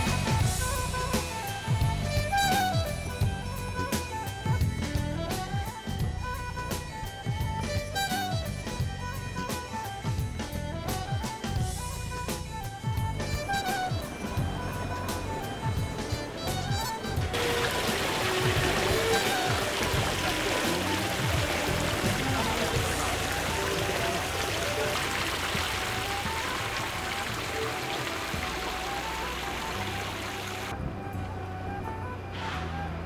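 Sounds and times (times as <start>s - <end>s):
background music with melody: 0.0s - 33.0s
fountain water falling into pool: 17.3s - 30.7s.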